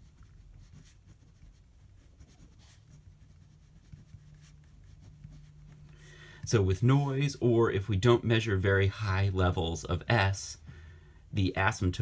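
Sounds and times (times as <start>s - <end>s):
pen scratching on paper: 0.0s - 5.9s.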